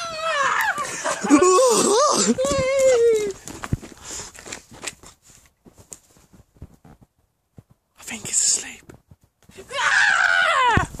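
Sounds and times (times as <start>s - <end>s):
person screaming loudly: 0.0s - 3.4s, 9.6s - 11.0s.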